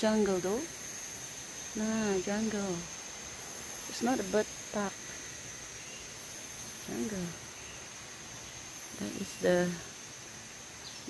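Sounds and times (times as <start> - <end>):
higher insect buzz: 0.0 - 11.0
insect chorus: 0.0 - 11.0.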